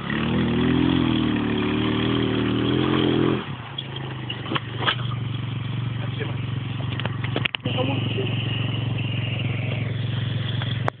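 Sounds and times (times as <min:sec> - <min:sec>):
small motorbike engine running: 0:04.0 - 0:11.0.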